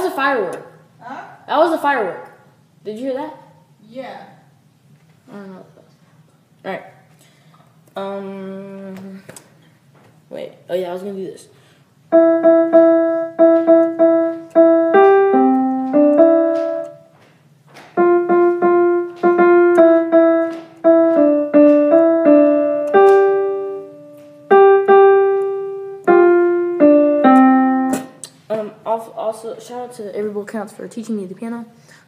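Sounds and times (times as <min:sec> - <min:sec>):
piano melody single notes: 0:12.1 - 0:17.1, 0:17.9 - 0:28.2.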